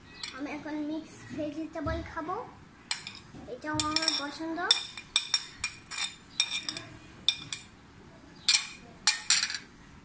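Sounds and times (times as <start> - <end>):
cutlery scraping on plates: 2.9 - 7.7, 8.5 - 9.6
sharp cutlery clinks: 3.9 - 7.7, 8.5 - 9.6.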